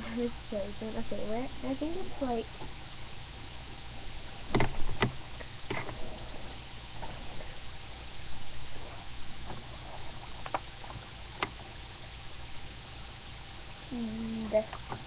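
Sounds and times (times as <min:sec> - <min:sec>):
steady low hum and hiss: 0:00.0 - 0:15.0.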